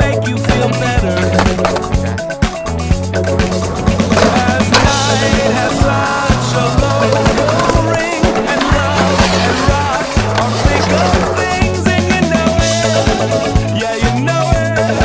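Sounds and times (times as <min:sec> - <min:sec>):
skateboard impacts: 0:00.0 - 0:14.1
music with looping bass line: 0:00.0 - 0:15.0
skateboard wheels rolling on concrete: 0:00.0 - 0:15.0
sharp skateboard clack: 0:00.4 - 0:13.5.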